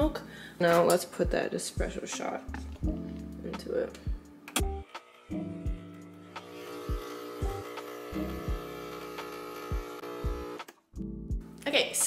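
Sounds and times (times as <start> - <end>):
background music: 0.0 - 12.0
espresso machine pump buzzing: 4.6 - 10.7.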